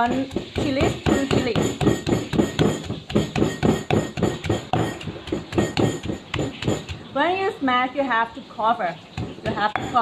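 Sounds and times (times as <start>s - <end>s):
pestle pounding in stone mortar: 0.0s - 7.2s, 9.1s - 10.0s.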